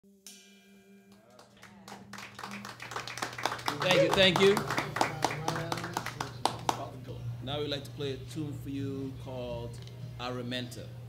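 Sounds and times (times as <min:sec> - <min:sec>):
audience applause: 0:01.4 - 0:06.9
man saying thank you: 0:03.7 - 0:06.9.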